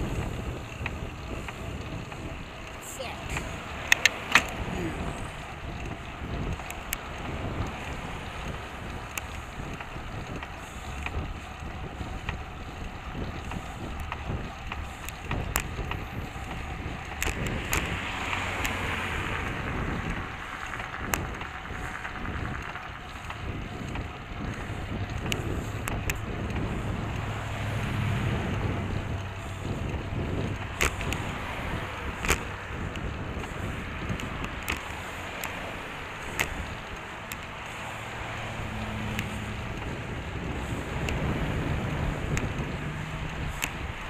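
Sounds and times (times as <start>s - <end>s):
low engine hum: 0.0s - 44.0s
passing motor traffic: 0.0s - 44.0s
road rumble: 0.0s - 44.0s
wind noise: 0.0s - 44.0s
sharp clicks: 0.2s - 27.3s, 28.4s - 44.0s.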